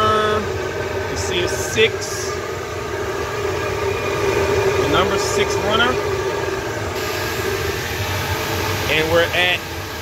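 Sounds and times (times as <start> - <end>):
vacuum motors droning: 0.0 - 10.0
rushing air hiss: 6.9 - 10.0.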